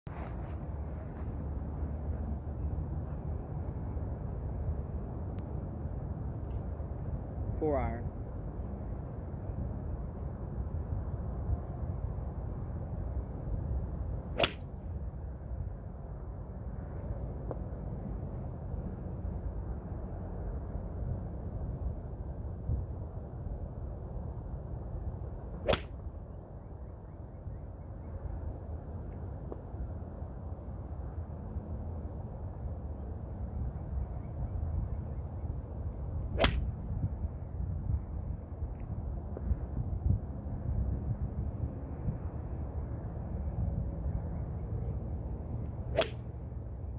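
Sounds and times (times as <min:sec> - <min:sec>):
golf club swish and crack: 0:14.2 - 0:15.0, 0:25.5 - 0:26.1, 0:36.0 - 0:37.1, 0:45.6 - 0:46.5
golf club hitting ball: 0:14.4 - 0:14.6, 0:25.6 - 0:25.9, 0:45.9 - 0:46.2.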